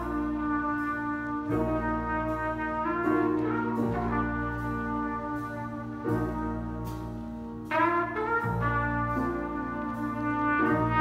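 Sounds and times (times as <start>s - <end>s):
brass and saxophone chords: 0.0s - 11.0s
low bass line: 0.0s - 11.0s.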